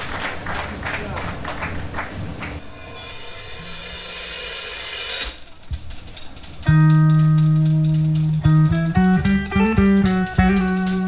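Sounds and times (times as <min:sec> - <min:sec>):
cymbal roll: 0:02.6 - 0:09.2
held guitar tones: 0:05.6 - 0:11.0.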